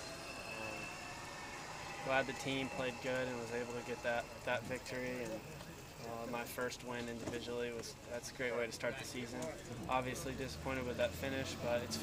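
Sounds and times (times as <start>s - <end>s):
faint thin high tone: 0.0s - 2.8s.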